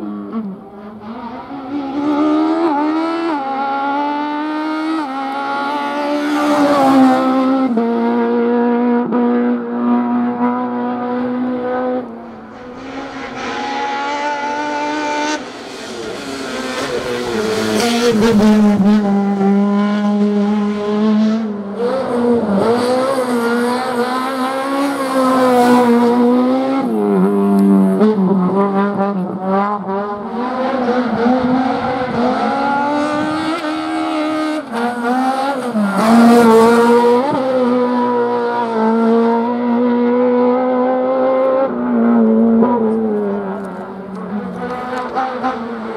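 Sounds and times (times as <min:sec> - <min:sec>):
race car engine revving hard: 0:00.0 - 0:45.9.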